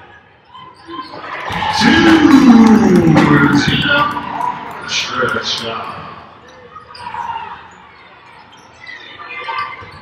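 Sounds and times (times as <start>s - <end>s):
players' voices: 1.1s - 7.7s
sneakers squeaking: 5.8s - 10.0s.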